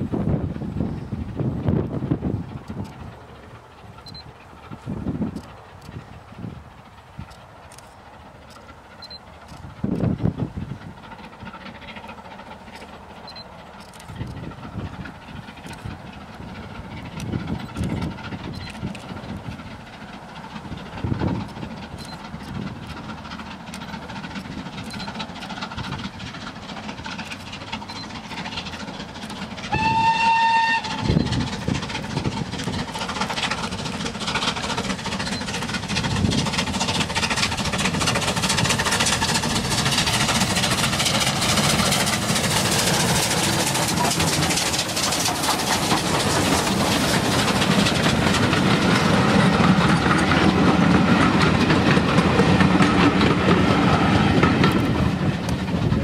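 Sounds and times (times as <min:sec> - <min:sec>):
locomotive exhaust: 0:00.0 - 0:56.0
wheels clattering on rails: 0:00.0 - 0:56.0
steam locomotive whistle: 0:29.6 - 0:31.5.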